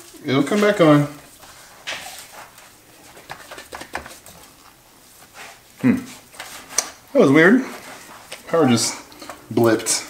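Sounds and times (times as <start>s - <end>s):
man saying hmm: 5.8s - 6.2s.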